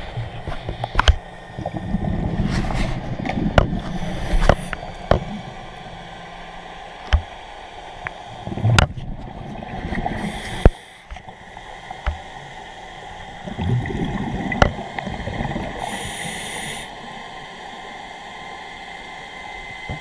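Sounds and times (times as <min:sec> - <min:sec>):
underwater rumble with gurgling: 0:00.0 - 0:20.0.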